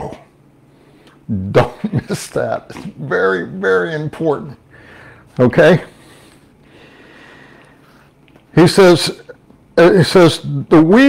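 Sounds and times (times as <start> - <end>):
man breathing through nose: 5.9 - 8.1.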